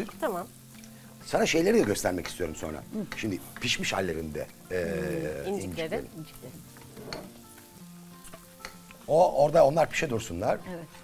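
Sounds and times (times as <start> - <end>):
faint sizzling in a pan: 0.0 - 11.0.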